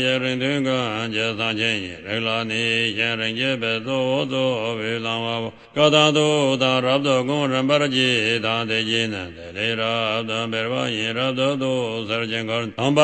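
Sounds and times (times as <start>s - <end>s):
man chanting: 0.0s - 13.0s.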